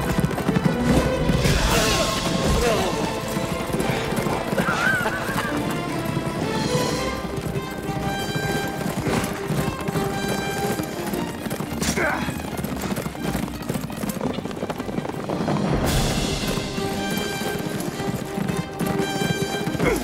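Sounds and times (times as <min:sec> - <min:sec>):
horses galloping hoofbeats: 0:00.0 - 0:20.0
orchestral film score: 0:00.0 - 0:20.0
horse neighing: 0:01.4 - 0:06.1.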